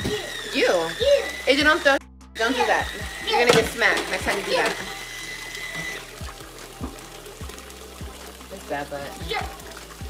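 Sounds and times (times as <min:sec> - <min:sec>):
faint background music: 0:00.0 - 0:10.0
water running from tap: 0:00.0 - 0:10.0.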